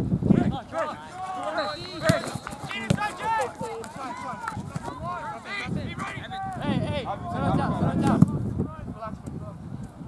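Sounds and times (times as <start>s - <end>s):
voices shouting and calling out: 0.2s - 9.6s.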